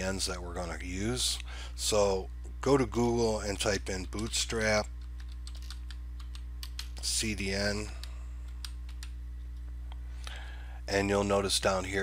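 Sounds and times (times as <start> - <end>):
steady low hum: 0.0 - 12.0
keyboard typing: 4.2 - 7.0, 7.8 - 9.5.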